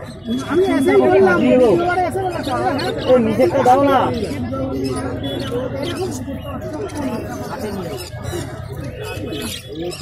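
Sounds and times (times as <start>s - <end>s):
caged birds calling: 0.0s - 10.0s.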